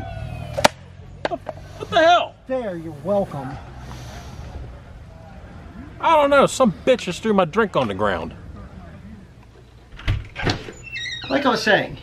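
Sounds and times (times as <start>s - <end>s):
door squeaking: 9.9s - 12.0s.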